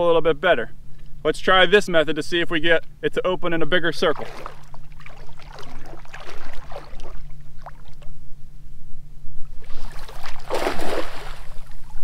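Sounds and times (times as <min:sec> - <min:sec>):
steady low hum: 0:00.0 - 0:12.0
water sloshing and rustling: 0:03.7 - 0:08.2, 0:09.4 - 0:12.0
net splashing on water: 0:04.1 - 0:08.0, 0:09.6 - 0:12.0.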